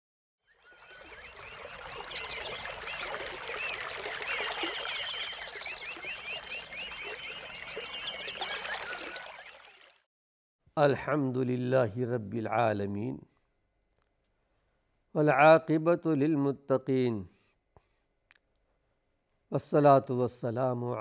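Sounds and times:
birds chirping: 0.5s - 9.9s
trickle of running water: 0.7s - 10.0s.

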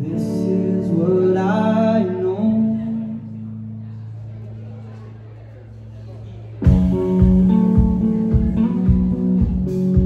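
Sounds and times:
electric and bass guitar chord: 6.6s - 10.0s.

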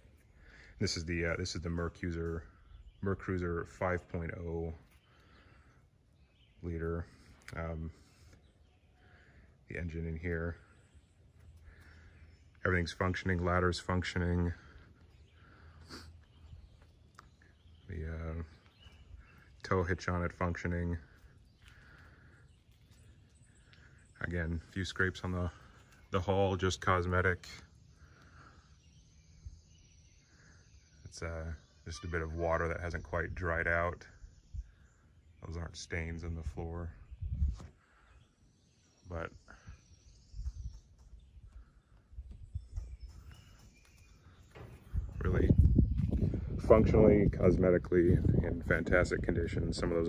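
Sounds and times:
faint bird calls: 0.0s - 50.0s
footsteps: 43.0s - 46.5s.

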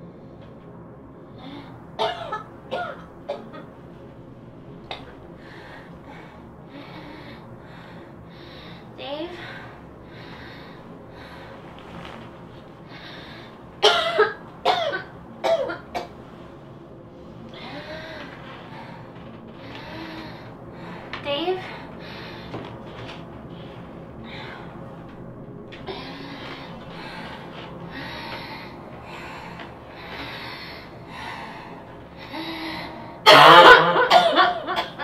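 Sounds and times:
woman coughing: 2.0s - 3.7s, 13.8s - 16.1s, 33.2s - 35.0s.

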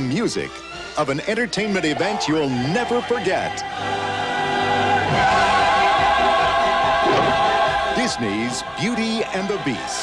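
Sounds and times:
orchestral film music: 0.0s - 10.0s
choir holding long notes: 1.6s - 10.0s.

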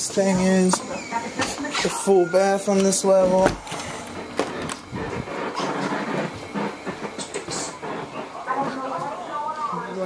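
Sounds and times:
footsteps: 0.0s - 9.4s.

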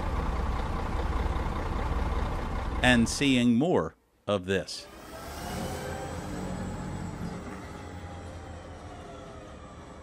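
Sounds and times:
tyre and road noise: 4.8s - 9.8s.

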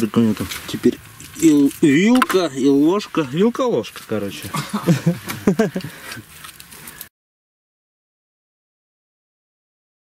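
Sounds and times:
man's voice: 0.0s - 4.9s
light background noise: 0.0s - 7.1s.

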